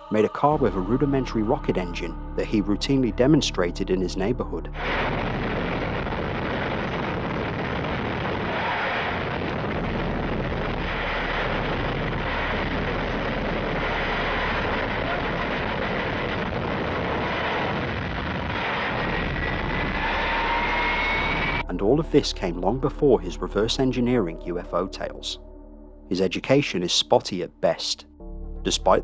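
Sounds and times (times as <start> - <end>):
rocket engine exhaust rush: 4.7 - 21.6
thin rising whine: 4.7 - 21.7.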